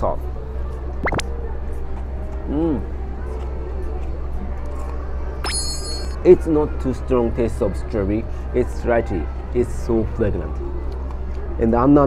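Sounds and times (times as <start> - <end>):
high bell-like ding: 5.4 - 6.2.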